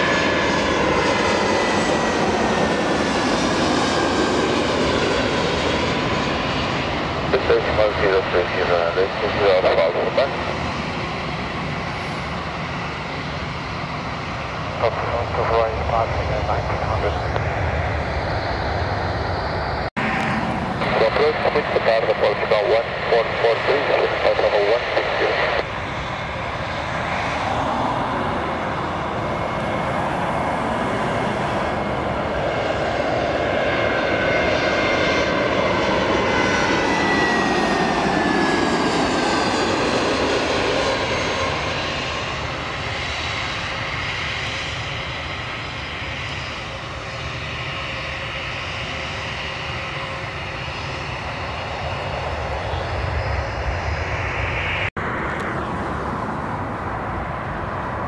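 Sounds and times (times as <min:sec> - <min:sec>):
jet airliner engines: 0:00.0 - 0:58.0.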